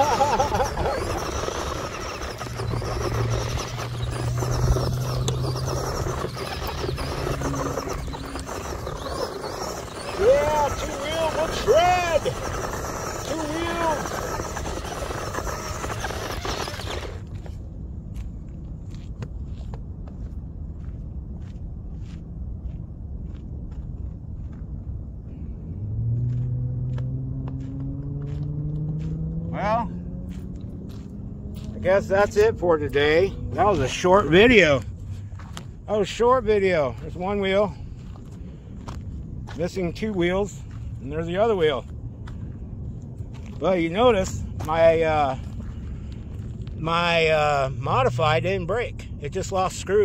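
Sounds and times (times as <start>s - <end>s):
electric motor whining: 0.0s - 17.5s
tyres churning loose dirt and gravel: 0.0s - 17.7s, 31.6s - 50.0s.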